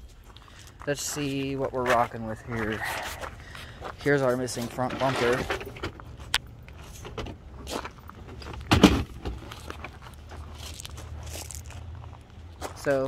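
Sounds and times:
footsteps on gravel: 0.0 - 5.4, 6.0 - 13.0
plastic bumper thump: 8.7 - 9.4.

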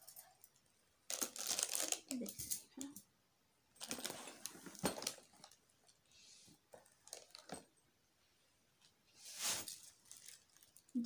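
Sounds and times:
plastic wrapping crinkling: 1.1 - 2.3, 3.8 - 5.6, 6.7 - 7.7, 9.4 - 11.0.

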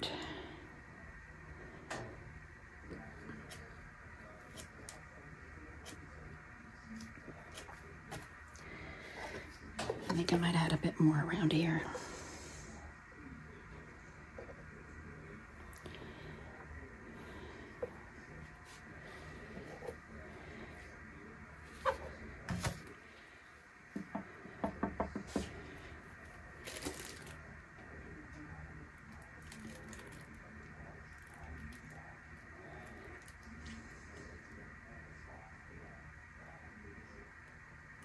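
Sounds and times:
faint steady hum: 0.0 - 38.0.

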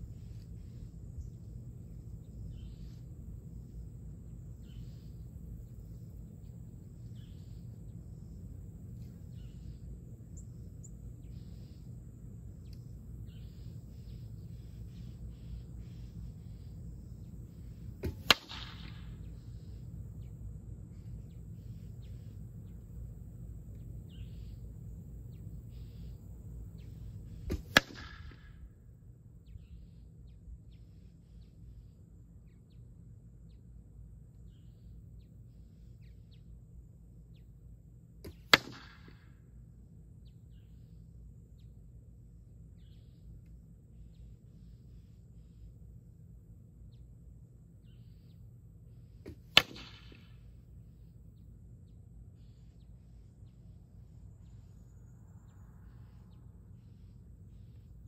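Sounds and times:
arrows striking wooden target: 18.0 - 19.2, 27.4 - 28.6, 38.2 - 39.2, 49.3 - 50.3.

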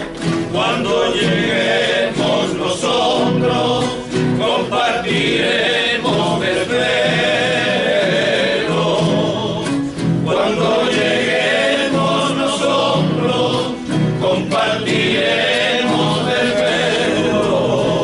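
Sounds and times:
acoustic guitars strummed: 0.0 - 18.0
men singing in unison: 0.0 - 18.0.

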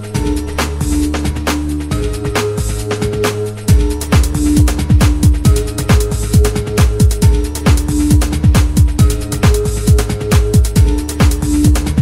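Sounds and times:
kick drum pulse: 0.2 - 12.0.

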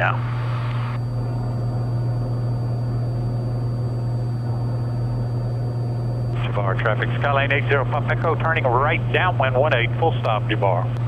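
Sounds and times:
airplane engine and propeller drone: 0.0 - 11.0.

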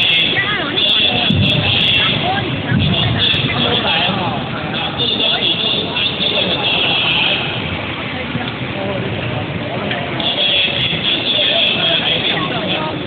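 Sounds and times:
indistinct chatter in hall: 0.0 - 13.0
steady background noise: 0.0 - 13.0.

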